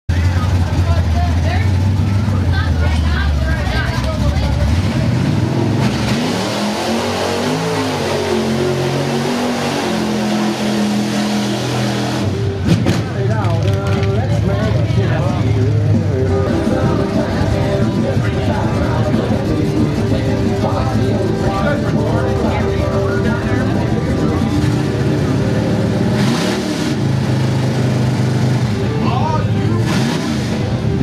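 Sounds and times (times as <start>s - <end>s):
people's voices: 0.1s - 31.0s
truck engine revving: 0.1s - 31.0s.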